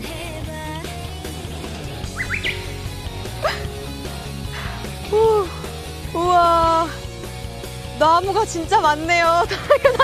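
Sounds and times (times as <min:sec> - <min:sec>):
background music: 0:00.0 - 0:10.0
rising chirps: 0:02.0 - 0:03.3.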